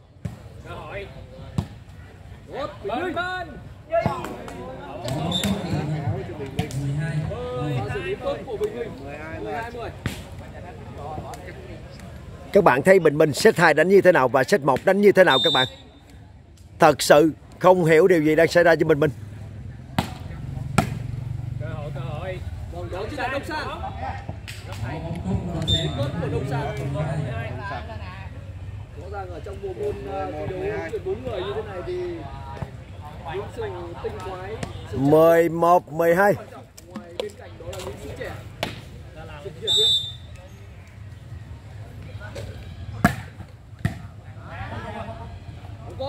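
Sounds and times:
referee's whistle blast: 5.2 - 5.6, 15.3 - 16.0, 25.6 - 26.1, 39.7 - 40.3
volleyball hit by hand: 19.9 - 20.2
faint voices: 21.5 - 35.0.

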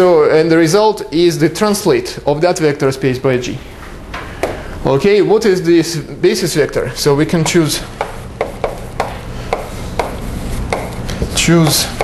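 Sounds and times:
chalk tapping and scraping on blackboard: 7.4 - 12.0.

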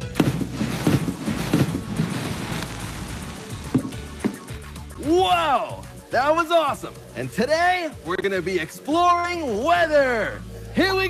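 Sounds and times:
background music: 0.0 - 11.0
liquid nitrogen rushing hiss: 0.2 - 4.0.

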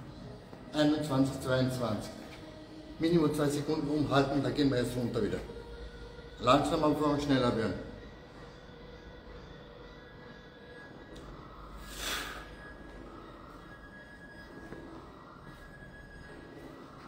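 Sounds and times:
faint background music: 0.0 - 17.0
steady low hum: 0.0 - 17.0.

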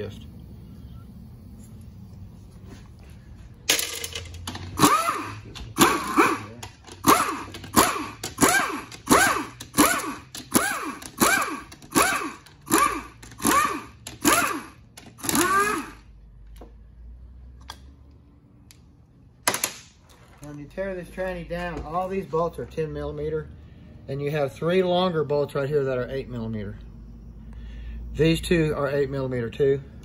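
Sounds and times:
pneumatic ratchet bursts: 4.6 - 16.1.

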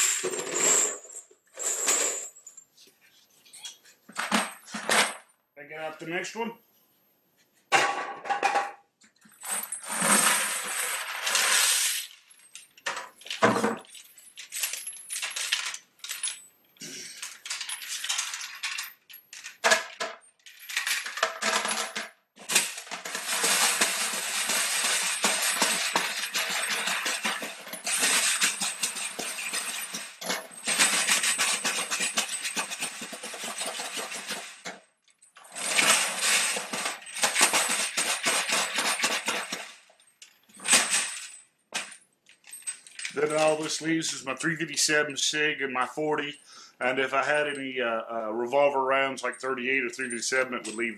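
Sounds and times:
metal cases rattling in plastic tray: 20.8 - 34.8, 35.6 - 39.7.

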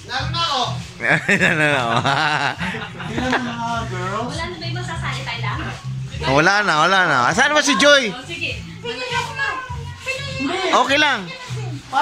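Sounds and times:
adult voices chattering: 0.0 - 12.0
background music: 0.0 - 12.0.

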